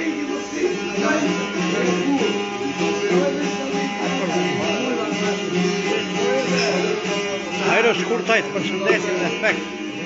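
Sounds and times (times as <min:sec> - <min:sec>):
plucked lutes playing dance tune: 0:00.0 - 0:10.0.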